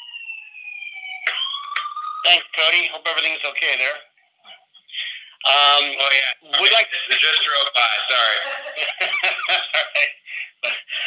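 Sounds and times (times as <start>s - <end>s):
siren wailing over phone line: 0.0s - 3.6s.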